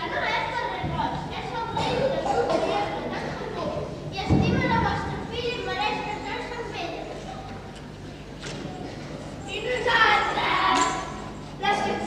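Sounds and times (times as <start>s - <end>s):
children speaking: 0.0s - 7.8s, 8.5s - 12.0s.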